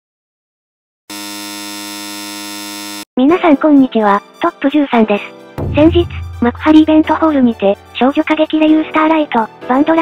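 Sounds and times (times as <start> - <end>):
electronic buzzer tone: 1.1 - 3.1.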